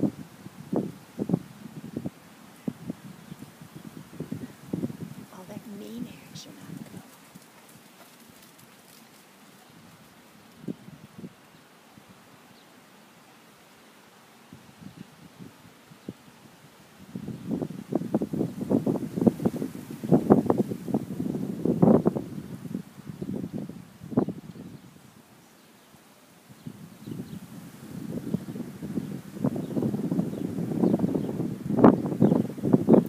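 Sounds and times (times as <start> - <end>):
horse hooves on sand: 2.6 - 11.3.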